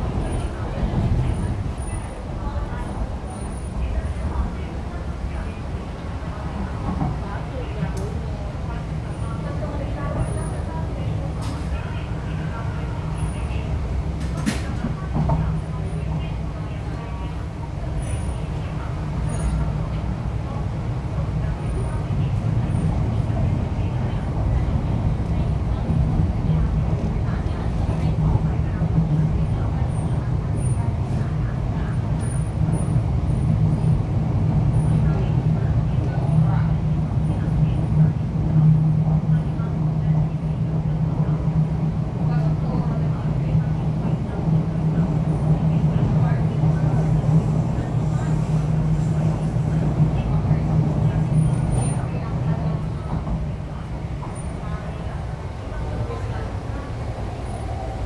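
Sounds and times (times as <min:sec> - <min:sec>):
train rumbling on track: 0:00.0 - 0:58.0.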